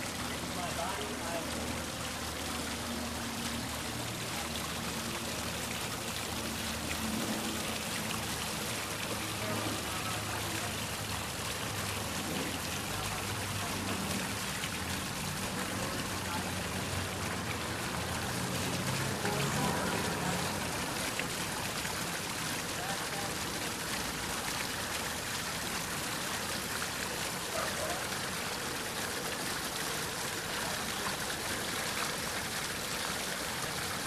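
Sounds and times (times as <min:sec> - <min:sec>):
fountain splashing into basin: 0:00.0 - 0:34.0.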